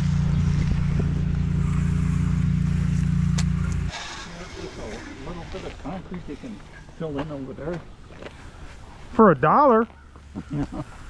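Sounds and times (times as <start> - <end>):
steady engine drone: 0.0 - 11.0.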